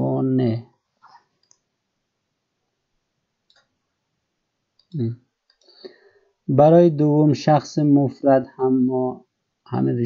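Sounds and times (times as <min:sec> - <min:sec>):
soft computer mouse clicks: 0:01.4 - 0:01.7.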